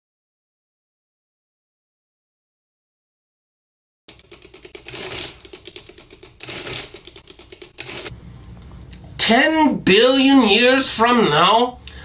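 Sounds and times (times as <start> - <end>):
typewriter keys clattering: 4.1 - 8.1.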